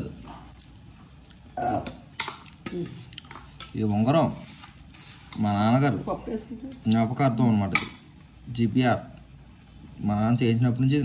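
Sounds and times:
person burping: 1.5 - 2.1.

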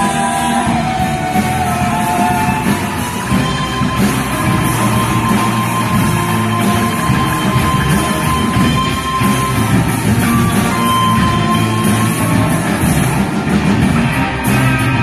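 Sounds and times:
electric guitars: 0.0 - 15.0
live rock band instrumental: 0.0 - 15.0.

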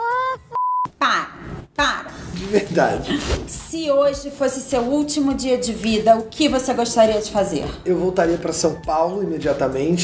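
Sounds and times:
censor beep tone: 0.5 - 0.9.

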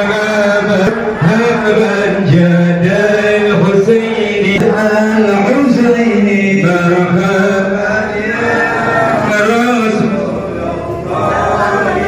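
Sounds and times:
man chanting a prayer: 0.0 - 10.6.

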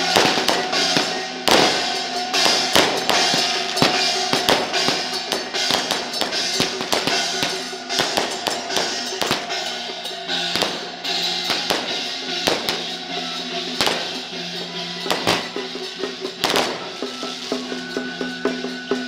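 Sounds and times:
drums beating: 0.0 - 19.0
hand cymbals clashing: 0.0 - 19.0
held drone tone: 0.0 - 19.0.

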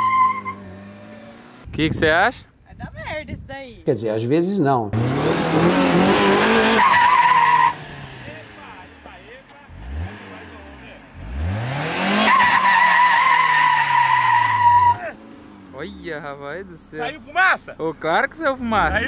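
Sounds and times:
car engine revving: 0.0 - 1.7, 5.0 - 16.9
tyres squealing: 6.2 - 8.5, 12.1 - 16.0.

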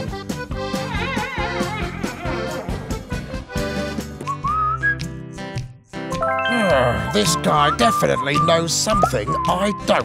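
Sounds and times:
background music with held chords: 5.1 - 9.4
whistled phrase rising in pitch: 6.2 - 9.5.

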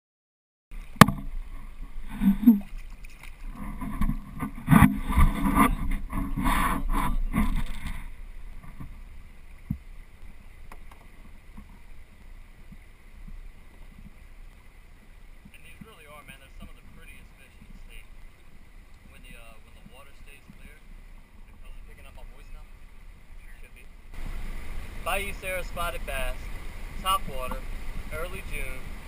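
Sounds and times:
fish splashing and thrashing: 0.7 - 15.5
moving river water: 0.7 - 29.0.

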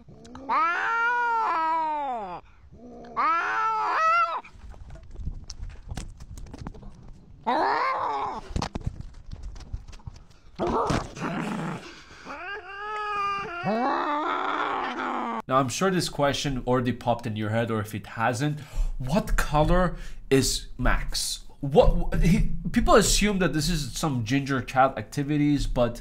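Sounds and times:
cats yowling: 0.0 - 4.5, 7.5 - 8.5.

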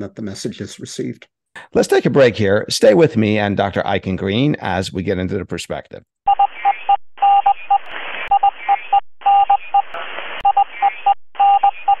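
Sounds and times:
morse code beeps: 6.3 - 12.0
static hiss: 7.8 - 8.4, 9.6 - 11.0.

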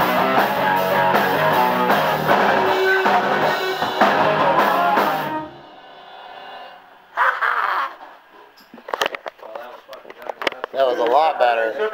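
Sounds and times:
rock band playing: 0.0 - 6.0
person singing: 2.3 - 5.5.

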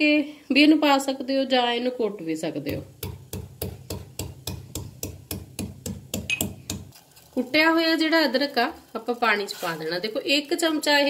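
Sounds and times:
metal pestle pounding in mortar: 2.7 - 6.9.

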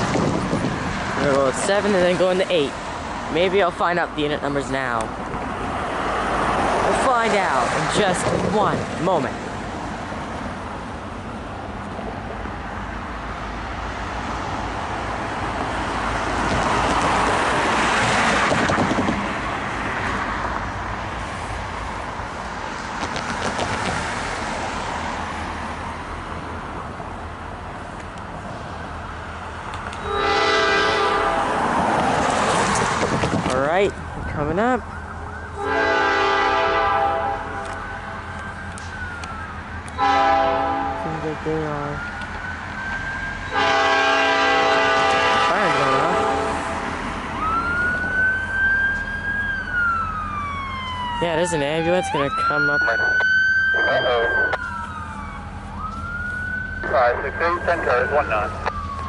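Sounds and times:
locomotive horn blasts: 30.0 - 31.6, 35.6 - 37.7, 40.0 - 41.1, 43.5 - 46.7
wailing siren: 30.0 - 31.9, 34.7 - 59.0.

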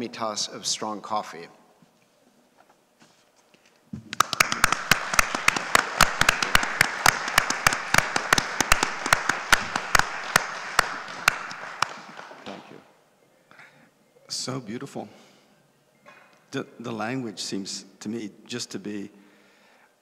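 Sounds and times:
audience applauding: 4.2 - 12.8.

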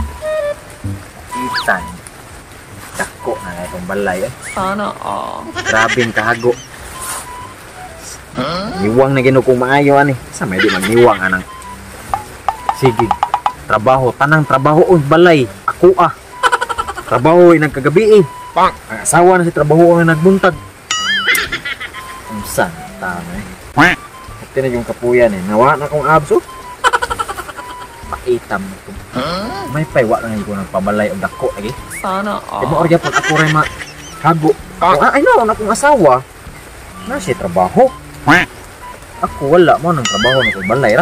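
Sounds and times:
swooping whistle-like tone: 0.0 - 0.7, 1.3 - 2.0, 6.9 - 8.1, 11.4 - 13.5, 25.8 - 26.8, 31.3 - 32.1, 38.8 - 41.0
warbling squeak: 0.0 - 2.0, 3.0 - 4.8, 38.9 - 41.0.

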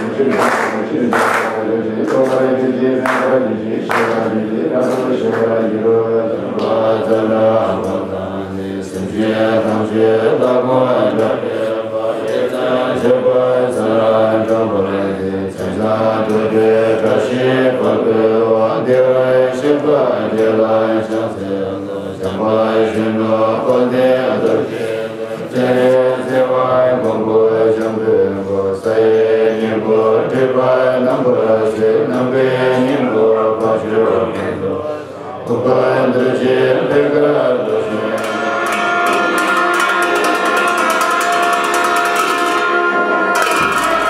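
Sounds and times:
monks chanting: 0.0 - 44.0.

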